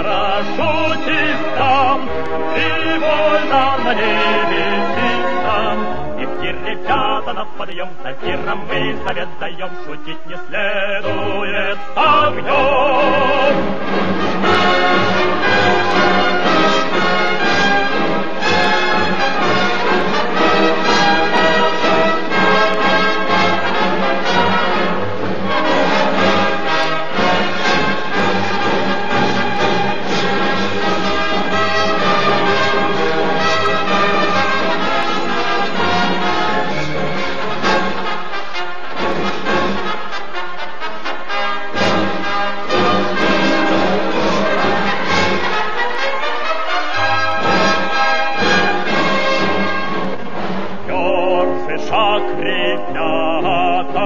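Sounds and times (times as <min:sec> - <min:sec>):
brass and orchestra march: 0:00.0 - 0:07.3, 0:08.4 - 0:54.0.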